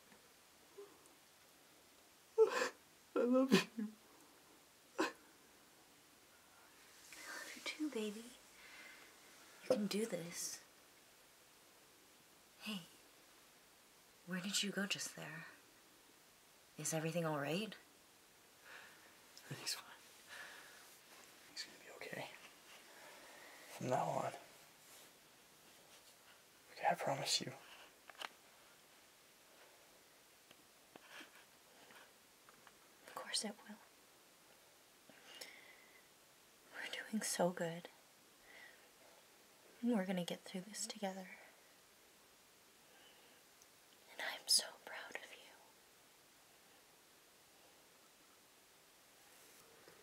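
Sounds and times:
person whispering: 0:07.1 - 0:08.4, 0:09.6 - 0:10.6, 0:19.4 - 0:20.0, 0:21.6 - 0:22.4, 0:23.7 - 0:24.5, 0:26.7 - 0:27.7, 0:33.1 - 0:33.8, 0:44.1 - 0:45.7.

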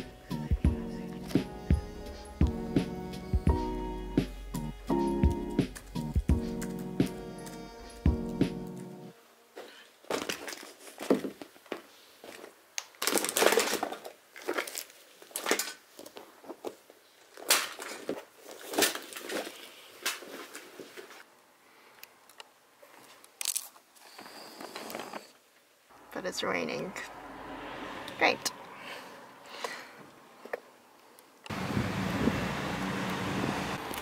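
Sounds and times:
background music: 0:00.0 - 0:09.5
paper bag crinkling: 0:12.2 - 0:21.2.

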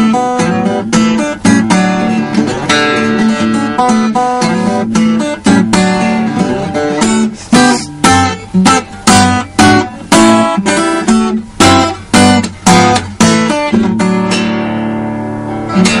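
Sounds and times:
fingerstyle acoustic guitar: 0:00.0 - 0:16.0.

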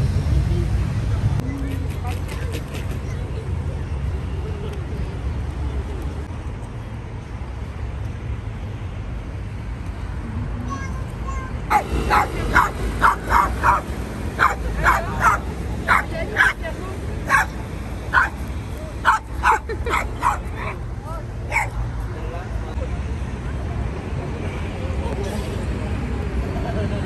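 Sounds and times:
small dog yapping: 0:11.7 - 0:13.8, 0:14.4 - 0:16.6, 0:18.2 - 0:18.4.

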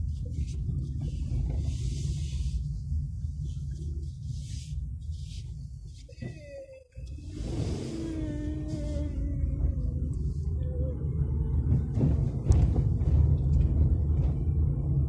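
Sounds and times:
low rumble: 0:00.0 - 0:15.0.

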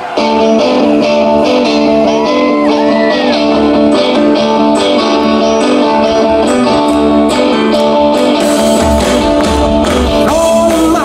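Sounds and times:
live band playing: 0:00.0 - 0:11.0
strummed electric guitar chords: 0:00.0 - 0:11.0.

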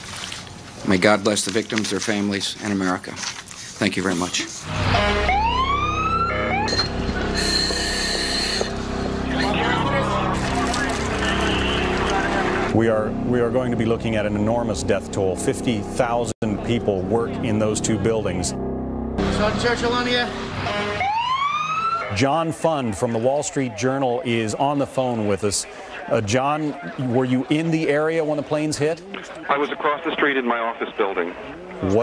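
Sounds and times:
emergency vehicle siren wailing: 0:04.7 - 0:12.8, 0:19.2 - 0:22.2
low rumble of street noise: 0:08.6 - 0:18.6.

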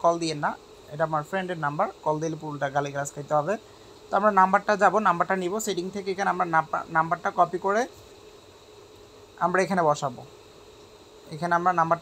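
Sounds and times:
man talking: 0:00.0 - 0:07.9, 0:09.4 - 0:10.3, 0:11.3 - 0:12.0.

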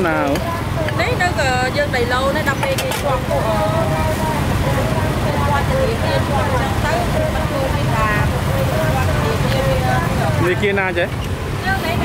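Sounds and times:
people talking: 0:00.0 - 0:12.0
road traffic rumble: 0:00.0 - 0:12.0.

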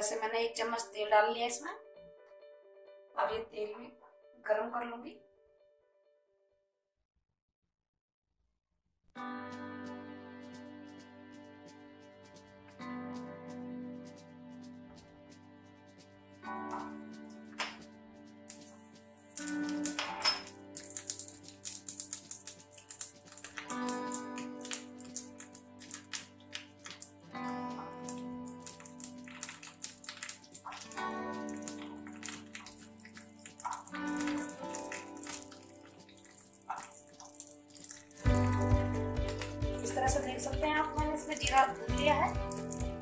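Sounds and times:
background music: 0:00.0 - 0:05.6, 0:09.2 - 0:43.0
seeds sizzling in hot oil: 0:18.4 - 0:39.7.

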